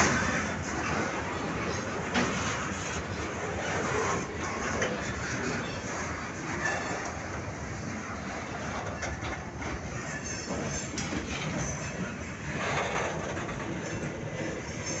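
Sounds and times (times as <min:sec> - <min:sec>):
train wheels rolling on rails: 0:00.0 - 0:15.0.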